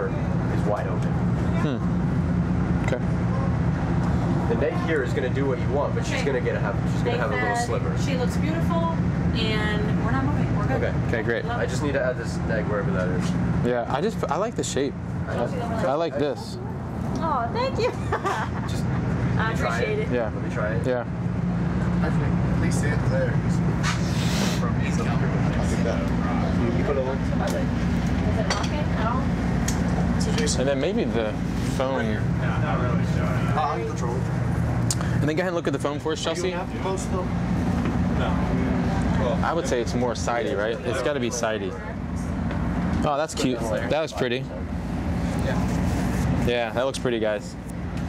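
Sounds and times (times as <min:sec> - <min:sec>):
rail car interior hum: 0:00.0 - 0:46.5
brief hiss: 0:23.8 - 0:24.6.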